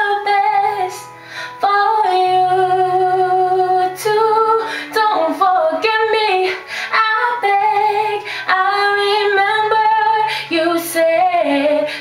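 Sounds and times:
woman singing a slow ballad: 0.0s - 12.0s.

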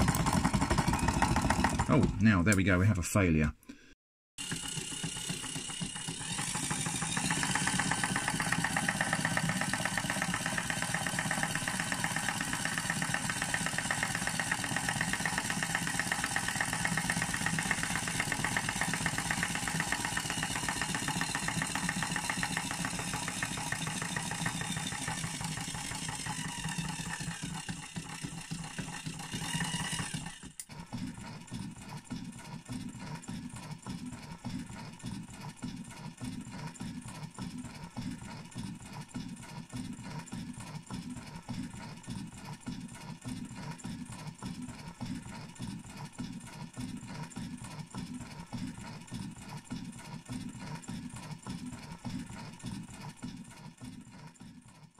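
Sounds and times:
crank arm rattling: 0.0s - 2.2s, 4.4s - 30.7s
small electric motor whirring: 4.4s - 54.9s.

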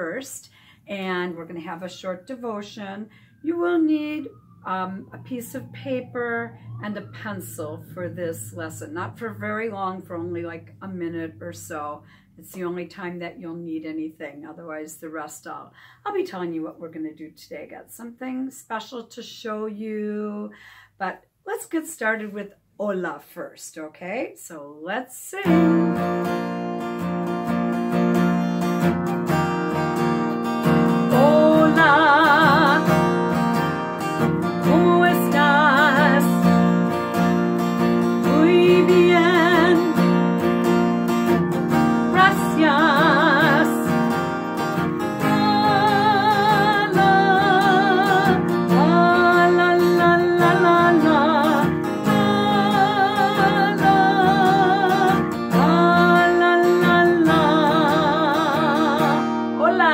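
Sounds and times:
woman singing with vibrato: 0.0s - 12.9s, 25.0s - 26.7s, 30.6s - 59.9s
strummed acoustic guitar: 25.4s - 59.9s.

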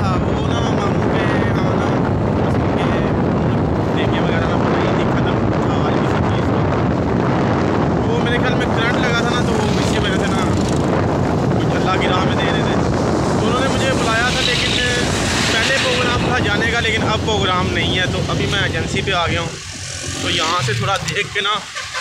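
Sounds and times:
man talking: 0.0s - 6.8s, 8.0s - 10.8s, 11.5s - 21.8s
wind on microphone: 0.0s - 21.4s.

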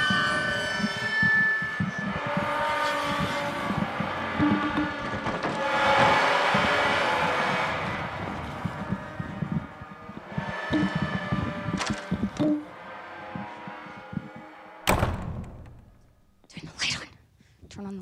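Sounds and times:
droning horror soundtrack: 0.0s - 16.3s
low thumps: 3.2s - 16.4s.

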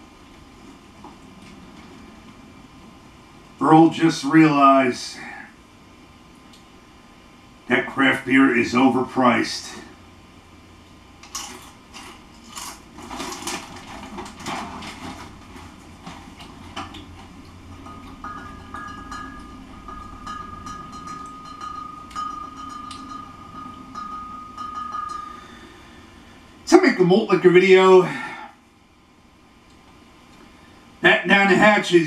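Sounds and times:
thin high tone: 17.8s - 27.6s.

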